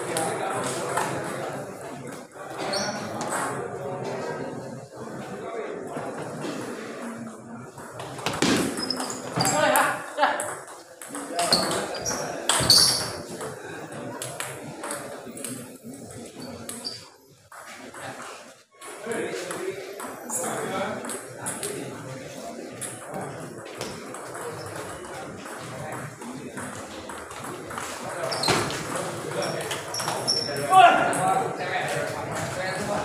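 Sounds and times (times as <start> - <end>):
table tennis ball bouncing: 8.0 - 13.6.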